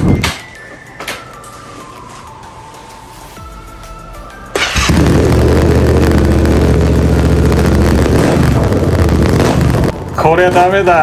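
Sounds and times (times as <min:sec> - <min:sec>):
motorcycle engine starting and idling: 0:04.6 - 0:09.9.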